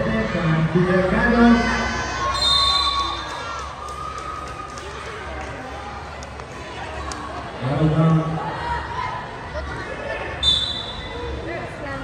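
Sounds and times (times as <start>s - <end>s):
referee whistle blast: 2.3s - 3.2s, 10.4s - 11.1s.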